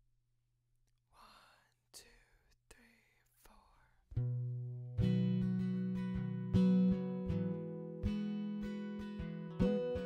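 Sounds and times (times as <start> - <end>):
faint whispered voice: 1.1 - 4.2.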